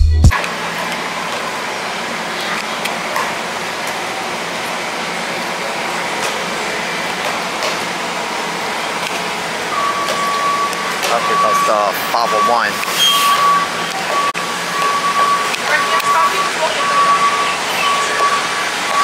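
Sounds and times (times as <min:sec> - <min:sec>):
buses idling: 0:00.0 - 0:19.0
steady high tone: 0:09.7 - 0:19.0.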